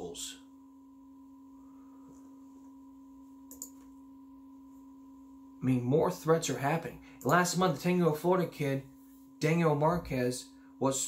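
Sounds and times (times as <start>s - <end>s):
faint two-tone hum: 0.0s - 11.0s.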